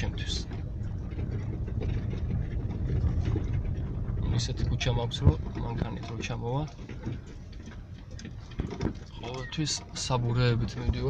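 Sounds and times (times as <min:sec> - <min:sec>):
car engine and tyres rumble: 0:00.0 - 0:11.0.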